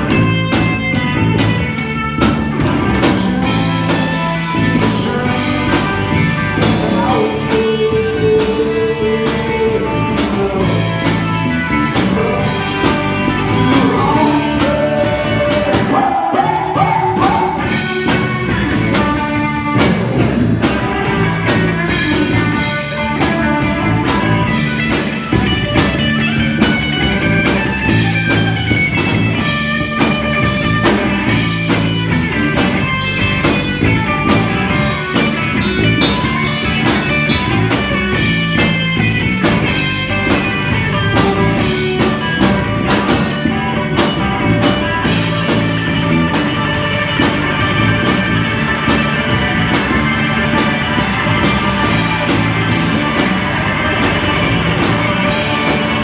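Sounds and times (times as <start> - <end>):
bass guitar: 0.0 - 56.0
drum kit beat: 0.0 - 56.0
electric guitar: 0.0 - 56.0.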